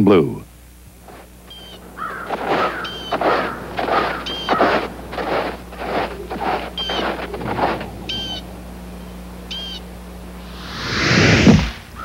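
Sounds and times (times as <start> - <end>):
footsteps crunching through snow: 0.9 - 9.7
bird chirping: 1.5 - 8.6, 9.4 - 9.9.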